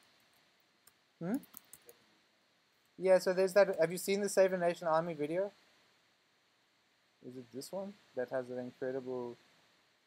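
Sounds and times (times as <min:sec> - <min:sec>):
computer keys clicking: 0:00.8 - 0:02.0.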